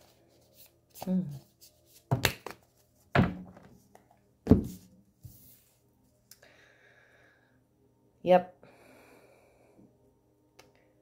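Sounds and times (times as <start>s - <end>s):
cards put down on wooden table: 2.1s - 2.6s, 3.2s - 4.8s.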